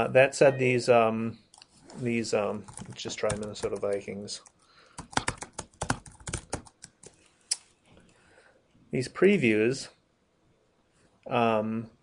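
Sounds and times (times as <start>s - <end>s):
typing on computer keyboard: 2.7s - 7.2s.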